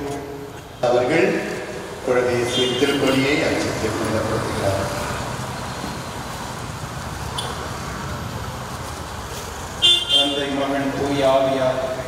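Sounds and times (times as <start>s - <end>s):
man speaking over a microphone: 0.0s - 5.2s, 10.0s - 12.0s
road traffic noise: 0.0s - 12.0s.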